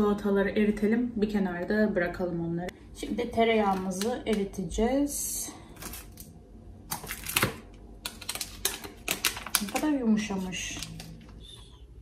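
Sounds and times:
wrapper rustling: 6.9s - 11.5s.

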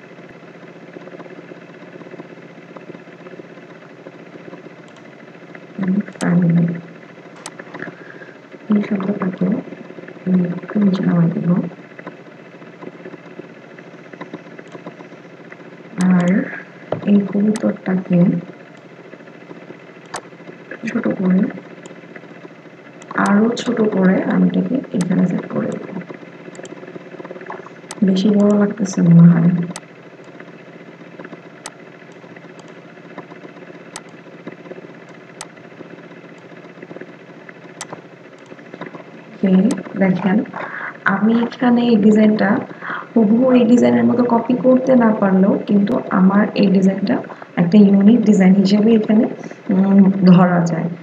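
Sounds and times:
steady background hum: 0.0s - 51.0s
person speaking: 5.8s - 6.9s, 7.7s - 11.8s, 15.9s - 18.5s, 20.7s - 21.6s, 23.1s - 26.0s, 27.4s - 29.8s, 38.8s - 51.0s
computer mouse clicks: 14.1s - 15.0s, 25.0s - 28.7s, 31.2s - 35.5s, 37.8s - 39.0s.

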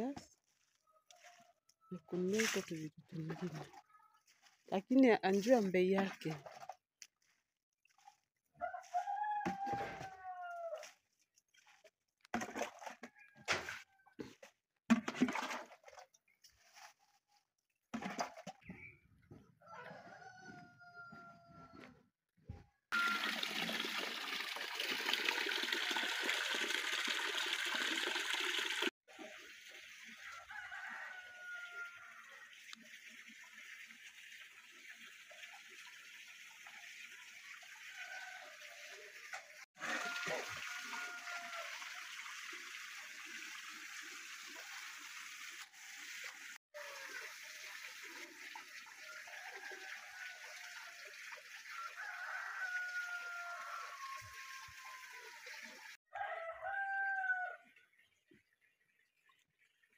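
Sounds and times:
roosters crowing: 8.6s - 10.8s, 19.6s - 21.8s, 30.3s - 32.4s, 39.8s - 41.7s, 51.7s - 55.4s, 56.1s - 57.6s
tap water pouring into basin: 11.6s - 16.9s, 22.9s - 56.0s.

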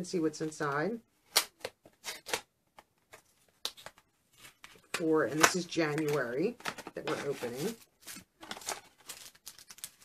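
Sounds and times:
paper envelope rustling: 6.1s - 10.0s.

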